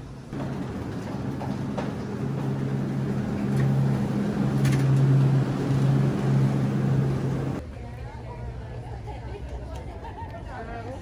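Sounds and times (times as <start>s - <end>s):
refrigeration fans humming: 0.0s - 9.6s.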